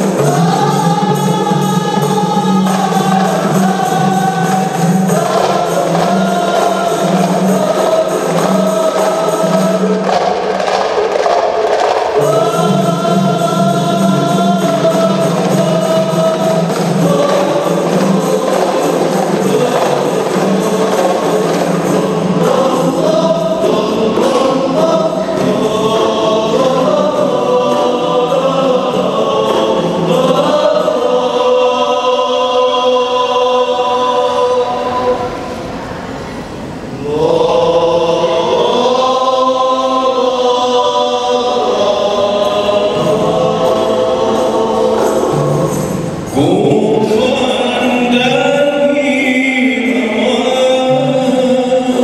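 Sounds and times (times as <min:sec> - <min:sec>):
frame drums: 0:00.0 - 0:32.1
men singing together: 0:00.0 - 0:35.8, 0:37.0 - 0:52.0.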